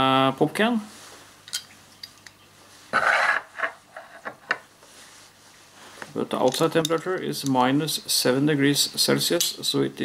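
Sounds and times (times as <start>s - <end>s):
rustling noise: 0.9s - 1.4s, 2.6s - 6.2s.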